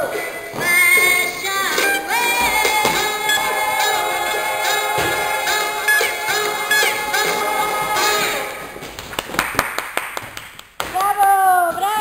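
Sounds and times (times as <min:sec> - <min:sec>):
sharp hand claps: 0:08.9 - 0:11.3.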